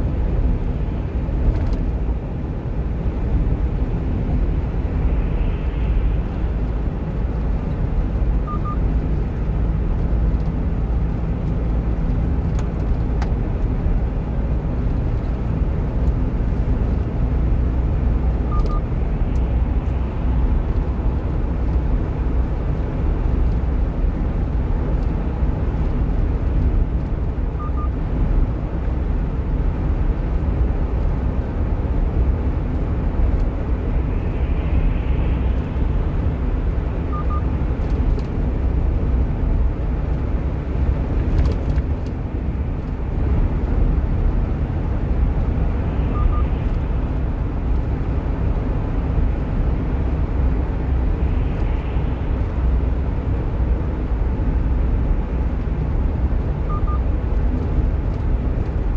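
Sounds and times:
truck engine and road rumble: 0.0 - 58.9.

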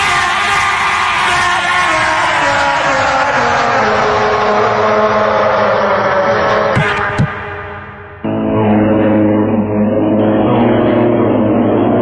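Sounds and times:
buzzy pitched-up vocal synth melody: 3.3 - 12.0.

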